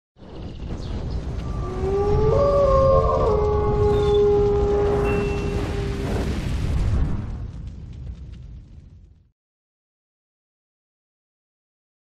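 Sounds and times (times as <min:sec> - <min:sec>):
deep rumble: 0:00.2 - 0:09.3.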